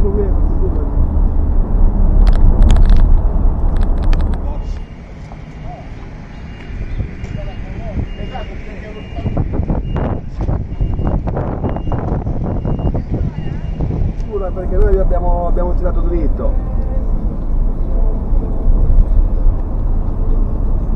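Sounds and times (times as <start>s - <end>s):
vehicle road noise rumble: 0.0s - 20.9s
voices: 4.3s - 11.2s, 11.8s - 18.8s.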